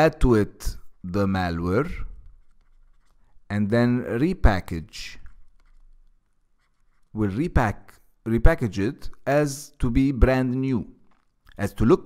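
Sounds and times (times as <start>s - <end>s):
stylus scratching on drawing tablet: 0.1s - 8.2s.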